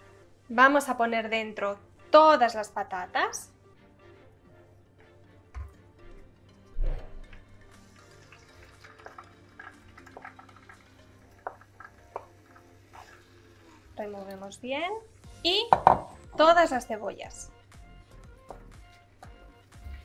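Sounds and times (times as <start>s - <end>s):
soft background music: 0.0s - 20.0s
wooden spoon knocking and scraping: 15.7s - 16.2s.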